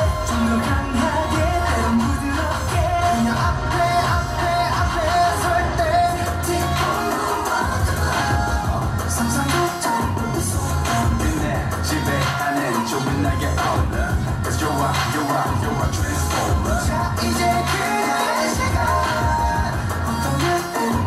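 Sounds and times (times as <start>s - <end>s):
pop song with sung vocals: 0.0s - 21.0s.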